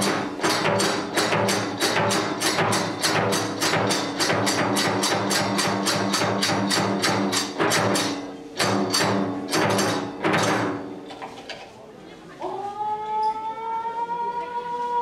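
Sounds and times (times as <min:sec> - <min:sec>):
taiko drum strikes: 0:00.0 - 0:11.1.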